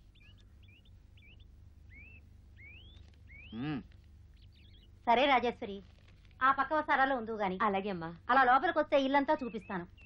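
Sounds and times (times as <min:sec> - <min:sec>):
person speaking a word: 0:03.6 - 0:03.9.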